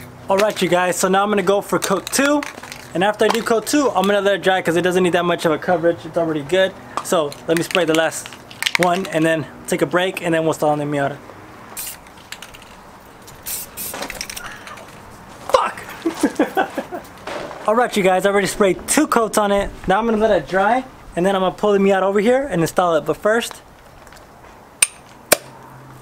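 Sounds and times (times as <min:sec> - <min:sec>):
spray paint can hissing: 0:11.8 - 0:14.9.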